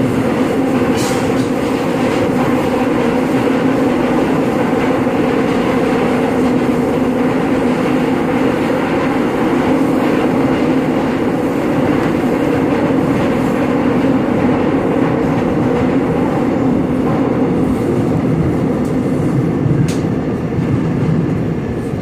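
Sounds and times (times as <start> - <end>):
subway train rumbling: 0.0 - 22.0.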